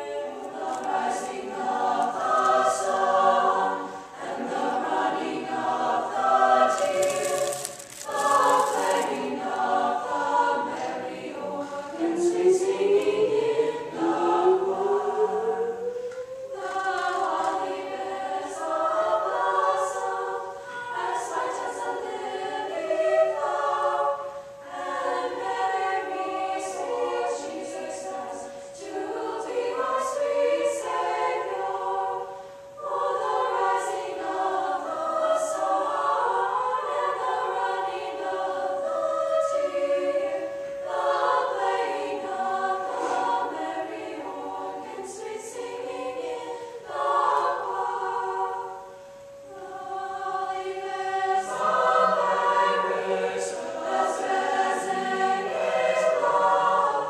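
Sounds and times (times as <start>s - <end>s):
mixed choir singing: 0.0s - 57.0s.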